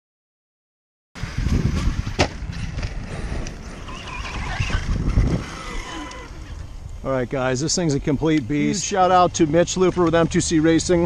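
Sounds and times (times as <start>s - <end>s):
rc truck rumbling on dirt: 1.2s - 11.0s.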